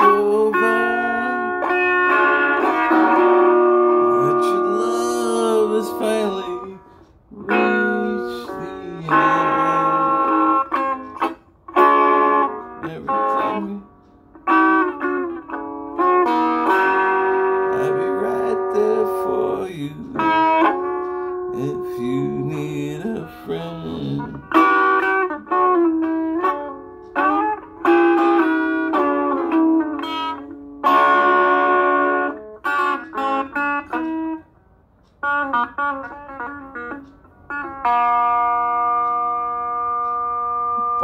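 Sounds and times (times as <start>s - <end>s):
electric guitar strumming: 0.0s - 41.0s.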